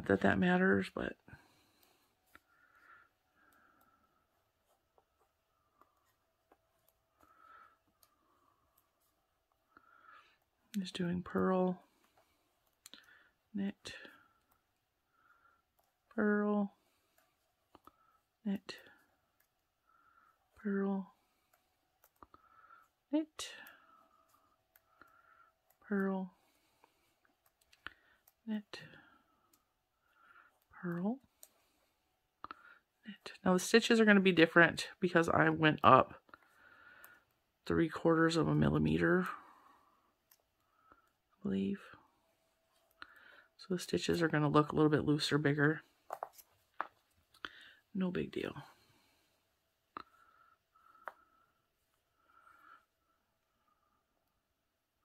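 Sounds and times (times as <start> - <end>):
person speaking: 0.0 - 1.6, 10.7 - 12.0, 16.1 - 16.8, 20.6 - 21.2, 25.8 - 26.4, 30.7 - 31.3, 32.6 - 36.2, 37.6 - 39.6, 43.6 - 48.9
knitting needles clicking: 3.4 - 14.9, 20.5 - 31.8.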